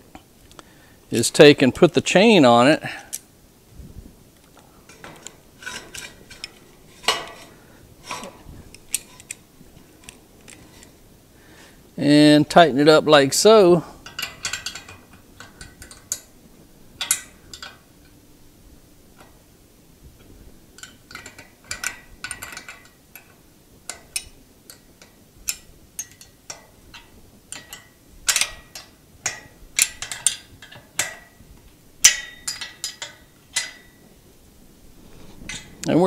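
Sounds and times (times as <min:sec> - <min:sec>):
metallic clicks and clinks: 0:20.8 - 0:31.3.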